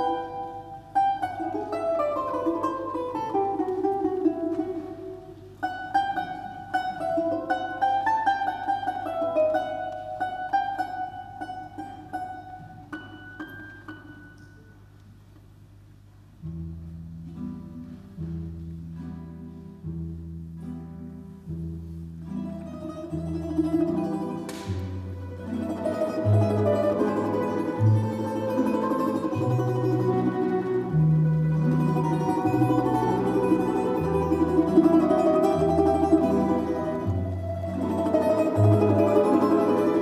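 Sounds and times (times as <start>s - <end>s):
balalaika plucked melody: 0.0s - 15.0s, 16.2s - 40.0s
folk instrument orchestra: 0.0s - 40.0s
low sustained chords: 18.3s - 40.0s.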